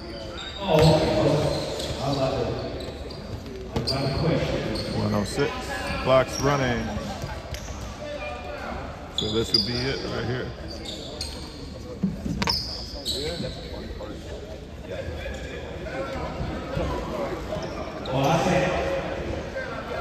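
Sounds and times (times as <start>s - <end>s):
spectators' voices: 0.0s - 20.0s.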